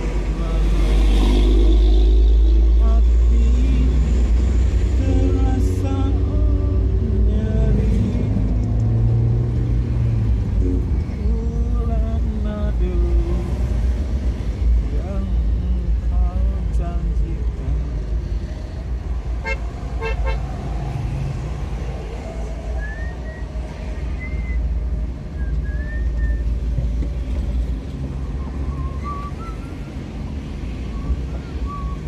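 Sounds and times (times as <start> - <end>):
vehicle engine and road rumble: 0.0 - 32.0
car horn toots: 19.4 - 20.4.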